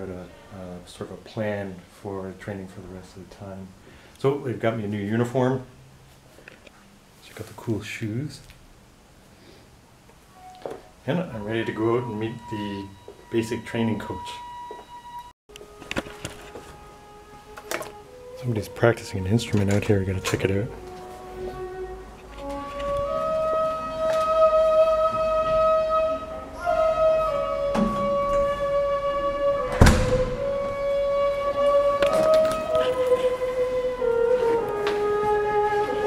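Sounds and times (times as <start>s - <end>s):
bamboo flute long note: 11.1s - 15.3s, 16.2s - 36.0s
loud thump: 29.7s - 30.6s.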